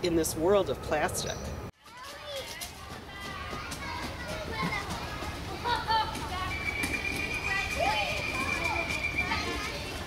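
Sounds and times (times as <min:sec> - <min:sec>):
children chattering and calling: 0:01.7 - 0:10.0.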